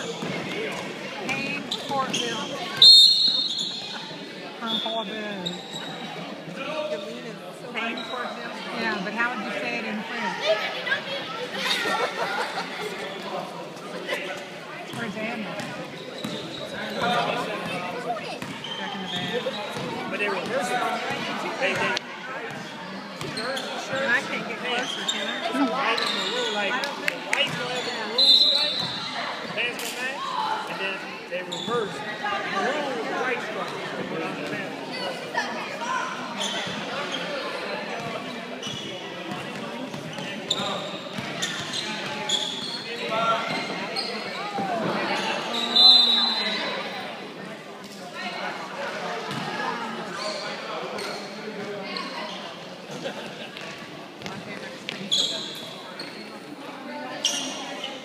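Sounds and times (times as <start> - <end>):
spectators chattering: 0.0 - 58.0
basketball bouncing on court: 18.4 - 18.6.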